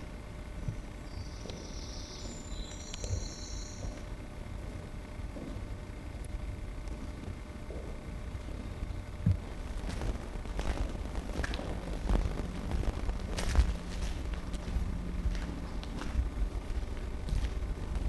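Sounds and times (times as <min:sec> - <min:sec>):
steady low rumble: 0:00.0 - 0:18.0
footsteps on concrete floor: 0:09.2 - 0:18.0.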